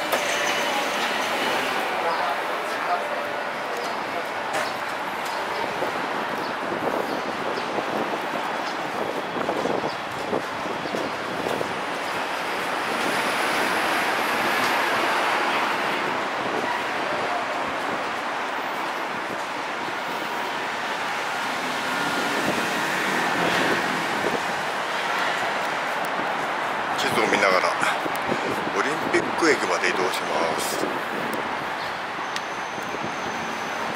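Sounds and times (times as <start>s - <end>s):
road traffic passing: 0.0s - 33.9s.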